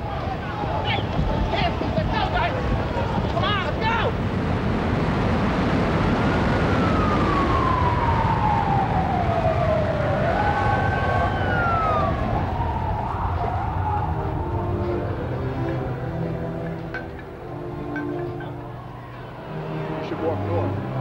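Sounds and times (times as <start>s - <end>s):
loud steady rumbling: 0.0s - 19.5s
emergency siren wailing: 5.0s - 21.0s.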